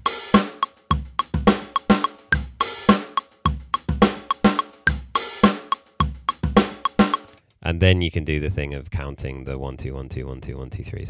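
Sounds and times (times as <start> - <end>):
drum kit groove: 0.0 - 7.4.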